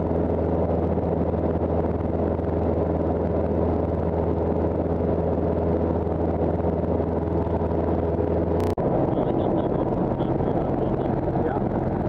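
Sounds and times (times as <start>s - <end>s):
airplane engine drone in cabin: 0.0s - 12.0s.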